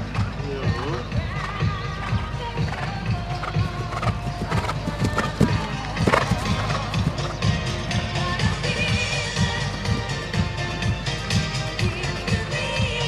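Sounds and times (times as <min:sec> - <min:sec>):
music playing: 0:00.0 - 0:13.0
horse hoofbeats on grass: 0:00.1 - 0:13.0.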